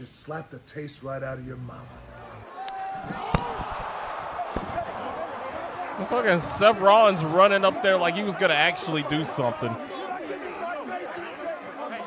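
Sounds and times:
men shouting and chattering: 2.3 - 12.0.

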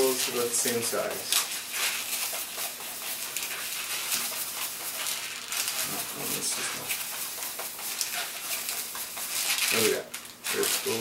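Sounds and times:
balloon squeaking and rubbing: 1.3 - 11.0.

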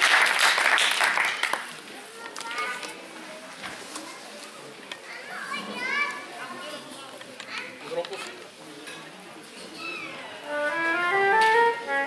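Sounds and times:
flutes playing: 10.4 - 12.0.

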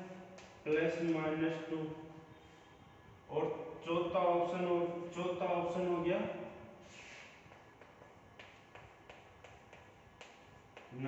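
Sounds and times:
chalk tapping and scratching: 6.9 - 11.0.

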